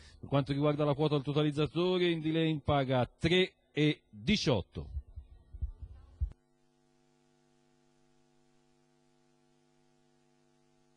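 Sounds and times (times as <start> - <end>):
faint electrical mains hum: 0.0 - 10.9.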